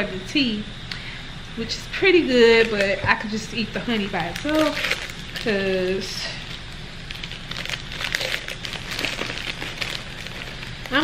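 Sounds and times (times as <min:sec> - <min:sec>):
crinkly wrapping crackling: 0:04.0 - 0:11.0.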